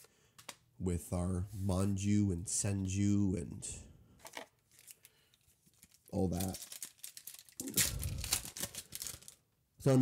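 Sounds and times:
foil wrapper crinkling and tearing: 4.7s - 9.4s.

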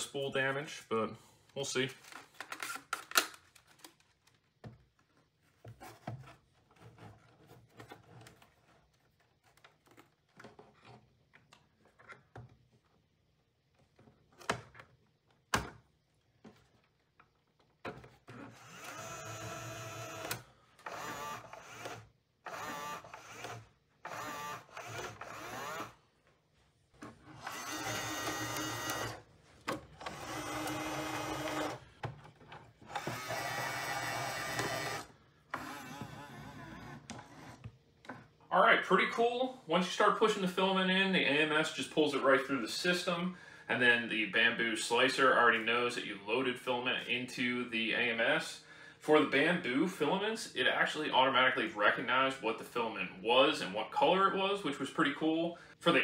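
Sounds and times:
filament feeder motors whirring: 18.5s - 26.0s, 27.3s - 29.2s, 30.0s - 31.8s, 32.8s - 37.6s.

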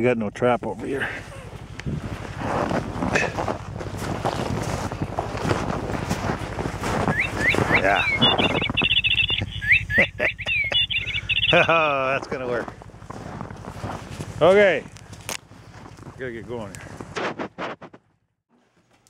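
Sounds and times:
low steady hum: 0.0s - 17.2s
rapid high warbling chirps: 7.1s - 11.8s.

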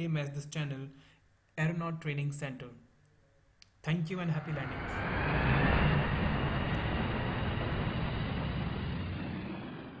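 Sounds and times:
jet airliner engine rush: 4.0s - 10.0s.

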